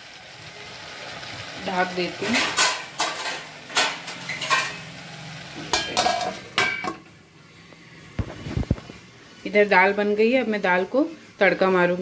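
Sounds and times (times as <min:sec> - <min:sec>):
faint stove hum: 0:00.0 - 0:12.0
metal lid clinking on pot: 0:05.7 - 0:07.1.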